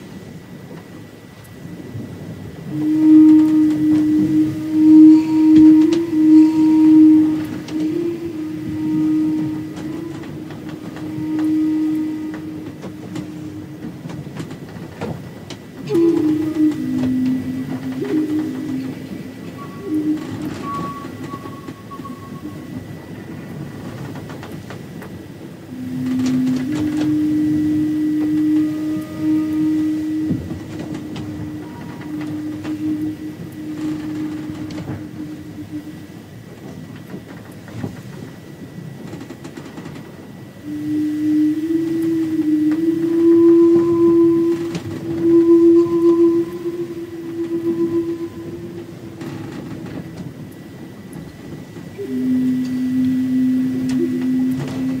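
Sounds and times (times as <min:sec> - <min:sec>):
low wooden flute: 0:00.0 - 0:55.0
steady low rumbling: 0:00.0 - 0:55.0.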